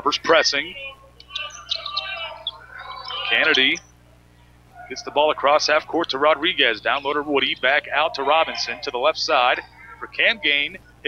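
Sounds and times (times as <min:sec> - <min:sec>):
crowd voices: 0:00.8 - 0:03.8, 0:04.7 - 0:10.7.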